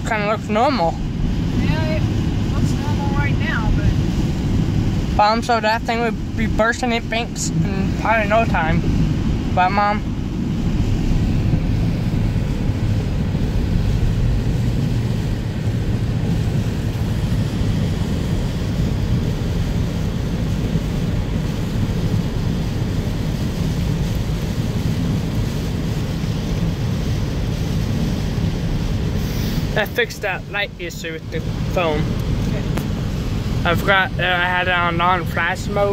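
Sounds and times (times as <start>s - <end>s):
rain on car body: 0.0s - 35.9s
tyres on standing water: 0.0s - 35.9s.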